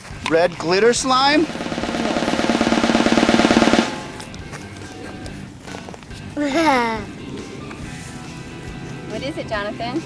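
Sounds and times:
fast drum roll: 1.3 - 4.3.

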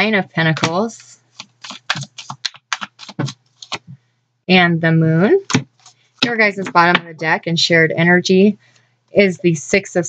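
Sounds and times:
cards clicking and snapping: 1.3 - 3.9.

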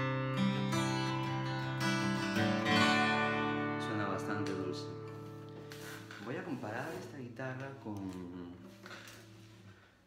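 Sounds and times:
acoustic guitar strings ringing: 0.0 - 6.4
person speaking: 3.7 - 9.4.

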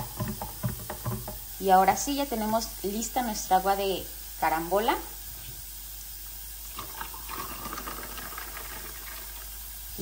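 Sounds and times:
drink pouring into glass with ice: 6.7 - 9.4.

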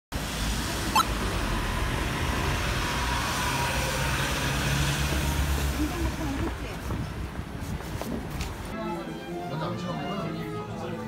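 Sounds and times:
street traffic noise: 0.1 - 11.0.

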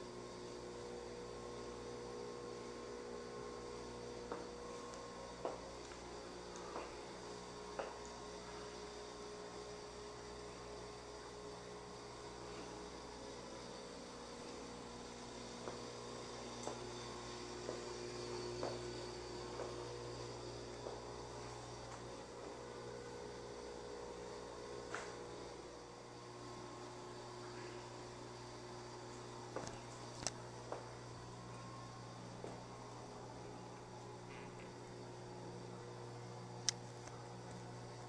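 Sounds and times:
low electrical hum: 0.0 - 38.0.

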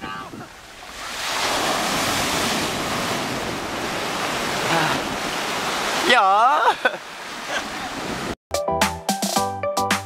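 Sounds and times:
ocean surf breaking: 0.0 - 8.4
background music with a beat: 8.5 - 10.0.

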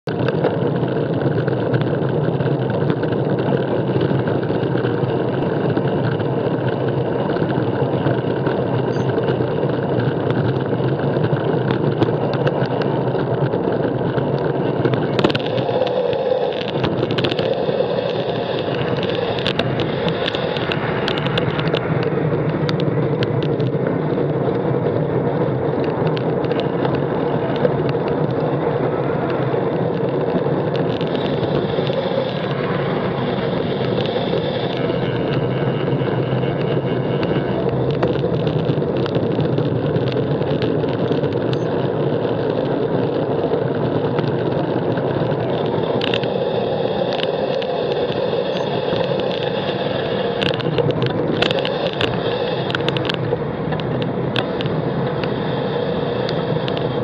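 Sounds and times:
car and bus engines: 0.0 - 57.0
tyre noise: 0.0 - 57.0
wind on microphone: 0.0 - 57.0
sharp clicks: 0.1 - 25.0, 25.6 - 57.0.

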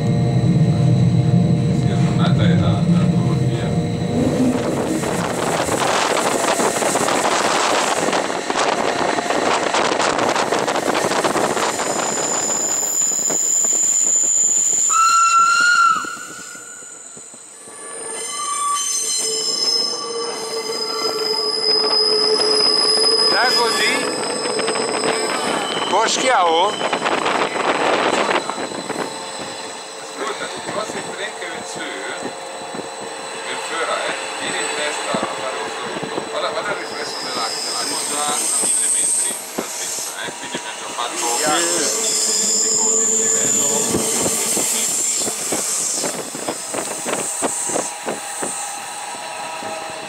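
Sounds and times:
deep train rumble: 0.0 - 18.1, 19.6 - 50.0
train wheels rolling on rail: 1.8 - 50.0
high-pitched wheel squeals: 11.4 - 50.0.

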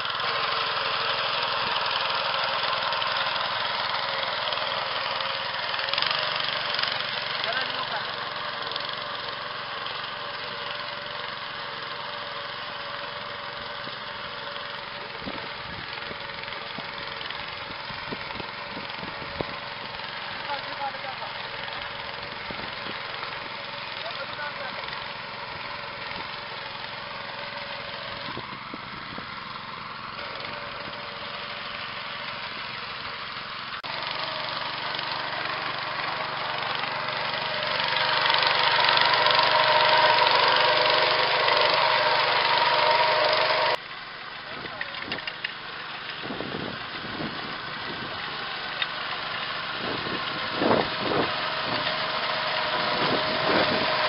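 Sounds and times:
engine-driven machine running: 0.0 - 54.0.

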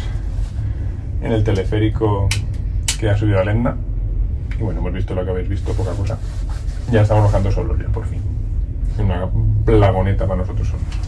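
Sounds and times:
low rumble: 0.0 - 11.0
man speaking: 4.6 - 8.3, 8.9 - 11.0.

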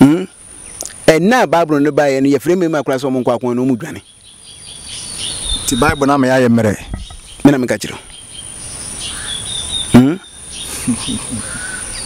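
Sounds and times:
faint chirps: 0.0 - 12.0
insects trilling: 0.0 - 12.0
man speaking: 5.7 - 8.1.

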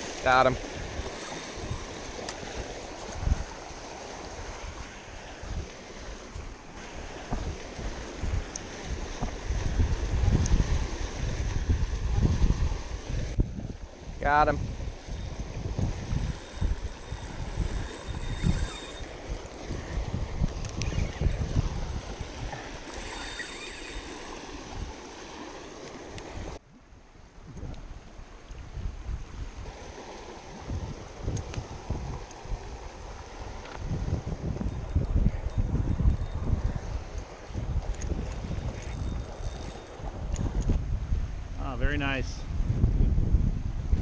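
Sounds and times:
wind buffeting microphone: 0.0 - 26.6, 27.3 - 44.0.

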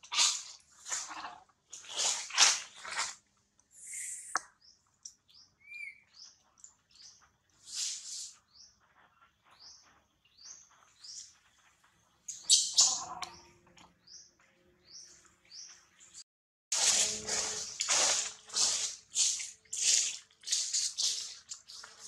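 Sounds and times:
bird chirps: 3.8 - 16.2.

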